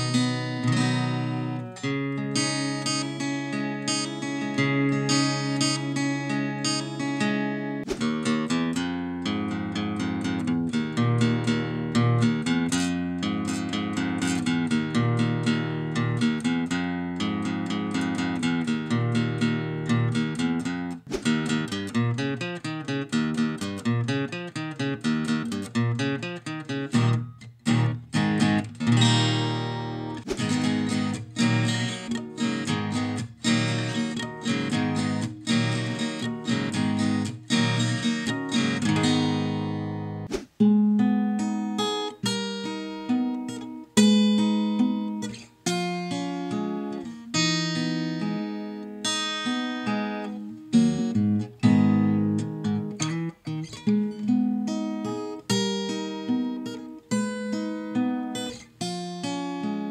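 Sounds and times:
acoustic guitar picking and chords: 0:00.0 - 0:59.9.

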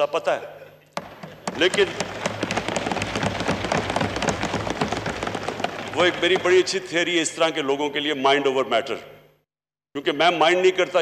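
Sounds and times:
crowd applauding: 0:01.0 - 0:07.0.

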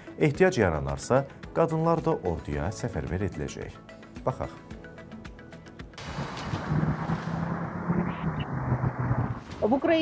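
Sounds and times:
wind rumbling on microphone: 0:06.0 - 0:09.7
city traffic drone: 0:06.0 - 0:10.0.

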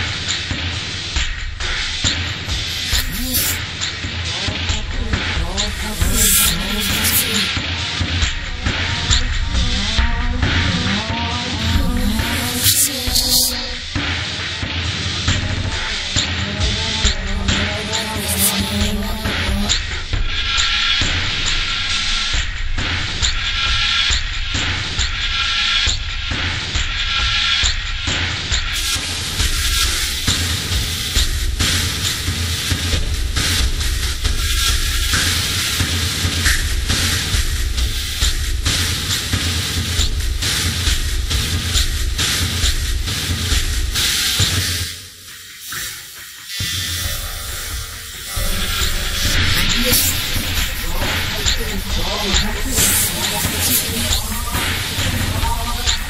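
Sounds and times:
loud music with heavy bass: 0:00.9 - 0:56.0.

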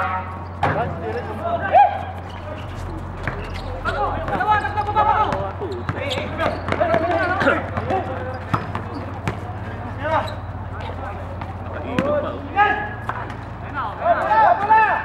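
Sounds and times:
players shouting: 0:00.0 - 0:15.0
basketball bouncing on concrete: 0:03.0 - 0:09.6, 0:10.4 - 0:12.2.

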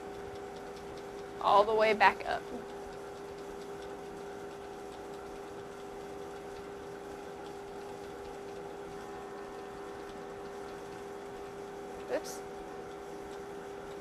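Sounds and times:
machine hum: 0:00.0 - 0:14.0.

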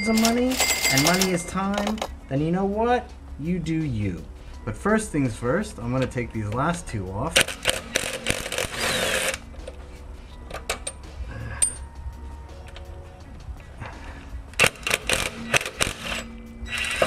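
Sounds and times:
quiet background music: 0:00.0 - 0:17.0.

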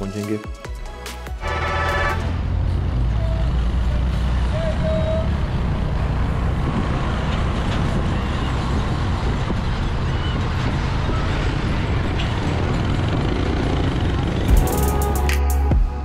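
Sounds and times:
motorcycle engine at road speed: 0:02.2 - 0:14.6
wind on microphone: 0:04.4 - 0:13.5.

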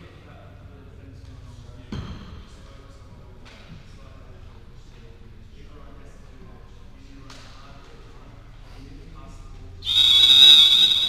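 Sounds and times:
referee's whistle blast: 0:09.8 - 0:11.0.

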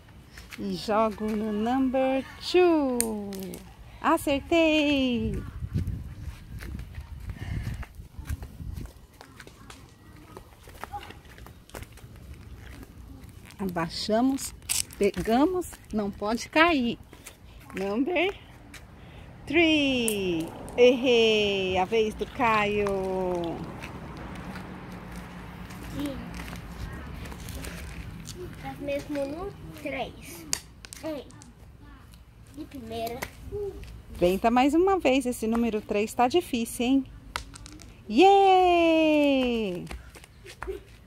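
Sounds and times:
footsteps hopping on concrete: 0:05.6 - 0:18.9, 0:21.7 - 0:29.9, 0:39.3 - 0:41.0.

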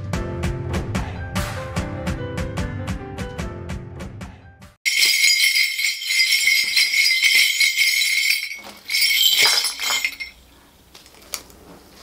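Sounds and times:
brass bell rattle jingling: 0:04.9 - 0:10.4.

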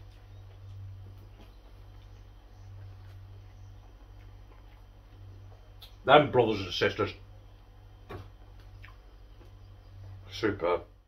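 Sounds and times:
steady low hum: 0:00.0 - 0:11.0
person chewing: 0:01.4 - 0:06.0, 0:08.1 - 0:09.6.

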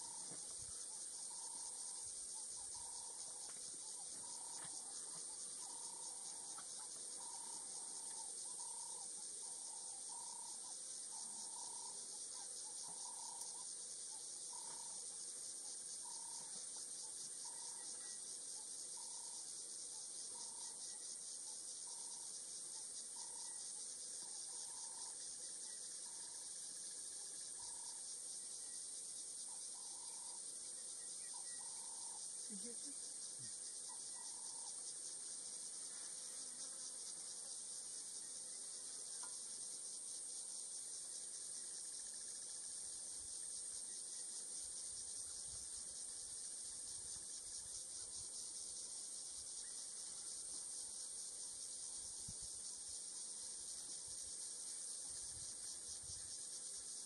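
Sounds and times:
insects trilling: 0:00.0 - 0:57.0.

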